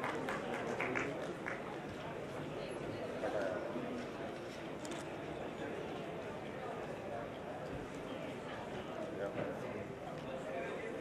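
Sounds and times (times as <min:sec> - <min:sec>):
audience clapping: 0:00.0 - 0:02.0
murmur of voices: 0:00.0 - 0:11.0.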